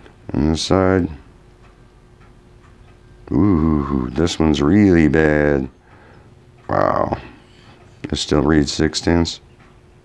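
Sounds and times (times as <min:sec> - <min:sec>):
faint irregular ticking: 0:00.0 - 0:10.0
low steady hum: 0:00.0 - 0:10.0.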